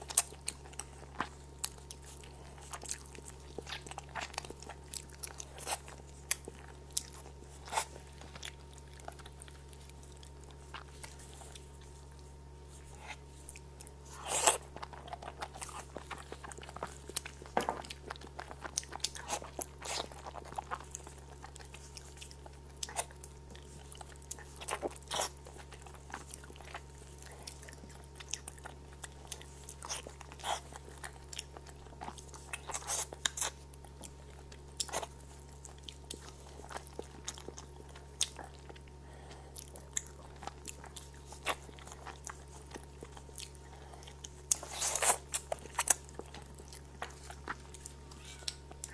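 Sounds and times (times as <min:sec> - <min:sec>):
chewing with wet mouth clicks: 0:00.0 - 0:48.9
low steady hum: 0:00.0 - 0:48.9.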